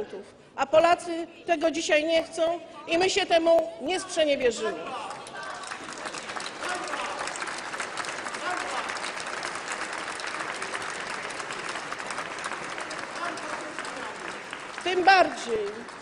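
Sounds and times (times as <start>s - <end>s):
many hands clapping: 4.9s - 16.0s.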